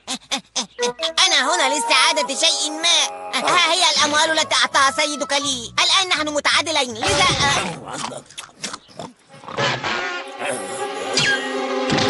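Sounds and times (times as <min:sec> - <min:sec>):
cartoon bulldog grunting: 0:00.0 - 0:01.1, 0:02.8 - 0:04.9, 0:05.5 - 0:09.6.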